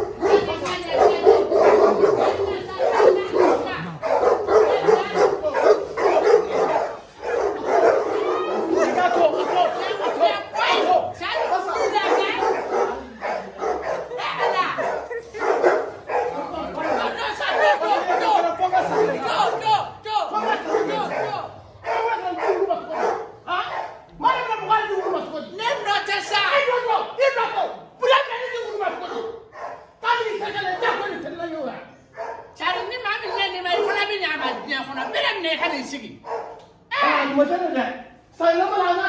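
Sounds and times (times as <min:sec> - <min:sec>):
dog barking: 0:00.0 - 0:19.8, 0:20.4 - 0:25.9, 0:28.6 - 0:31.2, 0:32.0 - 0:35.3, 0:36.2 - 0:36.8
voices talking over each other: 0:00.0 - 0:39.0.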